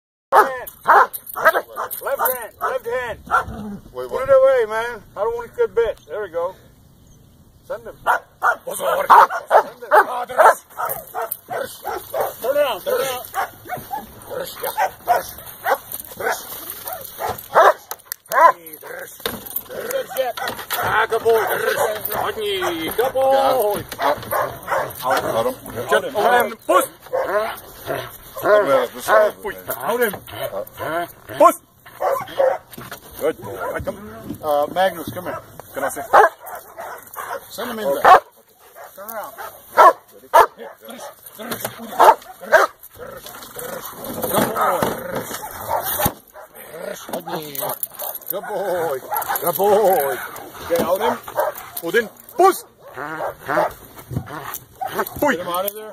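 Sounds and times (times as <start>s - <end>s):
dog barking: 0.3s - 3.6s, 8.0s - 18.6s, 20.1s - 23.1s, 23.9s - 25.6s, 27.1s - 29.4s, 31.9s - 32.7s, 33.4s - 33.9s, 35.2s - 42.8s, 45.3s - 46.6s, 47.3s - 55.4s.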